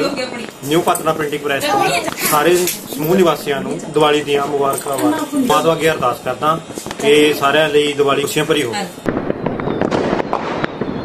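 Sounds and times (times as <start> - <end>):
fireworks crackling: 0.0 - 11.0.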